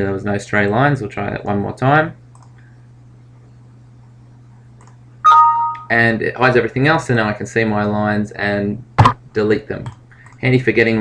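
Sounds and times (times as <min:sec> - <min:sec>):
faint steady hum: 0:00.0 - 0:11.0
two-note electronic chime: 0:05.2 - 0:06.0.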